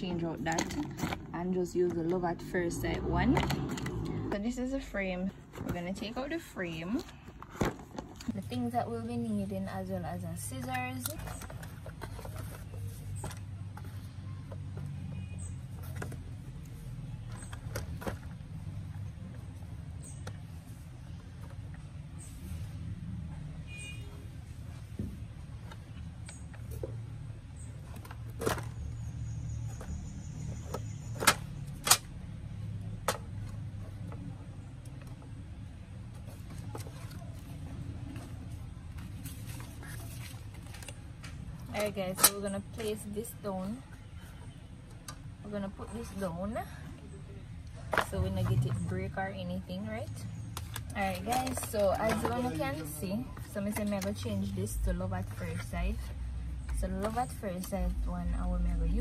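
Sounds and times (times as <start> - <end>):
woman speaking: 0.0 - 7.1, 8.3 - 11.3, 41.7 - 43.9, 45.4 - 46.8, 48.0 - 50.3, 51.0 - 56.1, 56.8 - 59.0.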